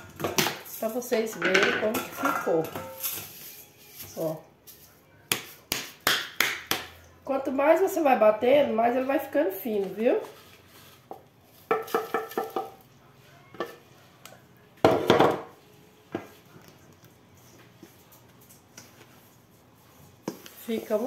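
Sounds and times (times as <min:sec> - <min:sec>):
utensils clinking on steel bowl: 0:00.0 - 0:04.3.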